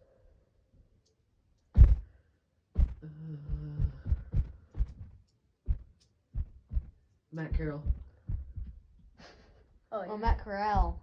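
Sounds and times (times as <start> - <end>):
short dull thumps: 1.8 - 2.1, 2.8 - 8.8, 10.2 - 11.0.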